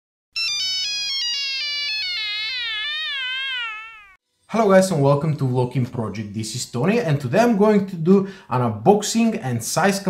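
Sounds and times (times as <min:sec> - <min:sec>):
synth jingle tone gliding: 0:00.4 - 0:04.2.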